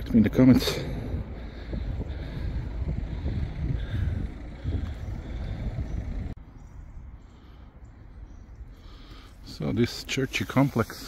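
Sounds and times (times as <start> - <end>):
wind buffeting microphone: 0.0 - 7.2.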